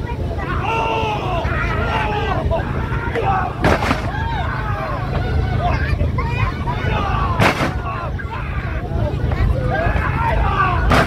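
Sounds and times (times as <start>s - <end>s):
crowd chatter: 0.0s - 11.0s
steady low rumble: 0.0s - 11.0s.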